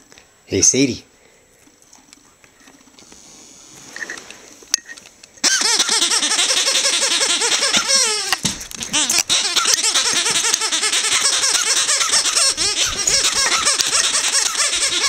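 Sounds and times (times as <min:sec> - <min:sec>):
squeaky toy squeaking: 0:05.4 - 0:15.0.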